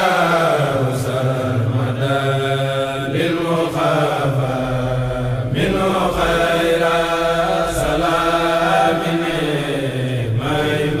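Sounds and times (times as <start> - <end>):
men chanting: 0.0 - 11.0.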